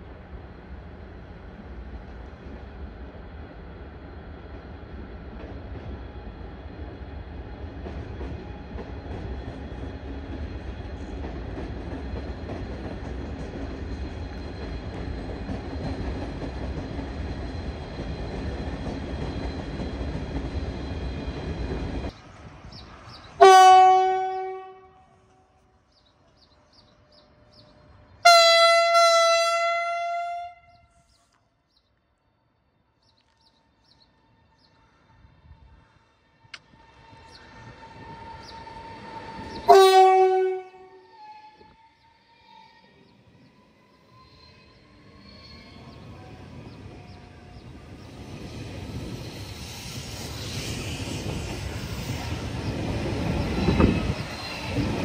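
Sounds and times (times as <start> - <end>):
train running rumble: 0.0 - 24.8, 45.9 - 55.0
electric train horn blasts: 23.4 - 25.2, 28.2 - 30.9, 39.7 - 41.0.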